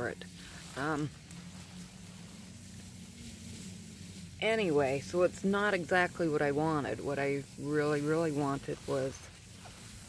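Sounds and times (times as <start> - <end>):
low hum: 0.0 - 10.0
soft hiss: 0.0 - 10.0.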